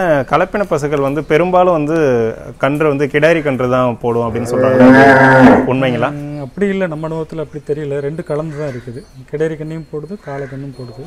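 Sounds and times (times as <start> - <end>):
cow mooing: 4.3 - 6.1.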